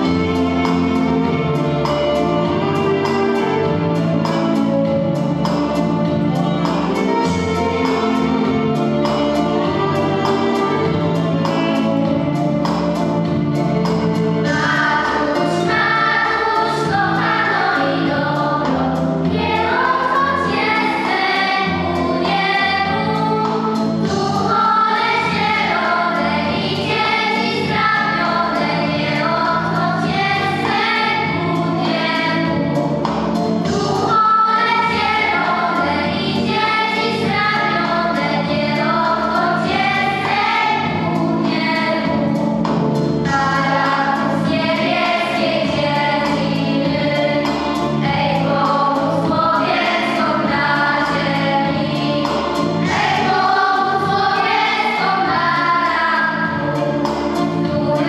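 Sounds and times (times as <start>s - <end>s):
instrumental accompaniment: 0.0s - 58.0s
choir singing: 14.4s - 58.0s.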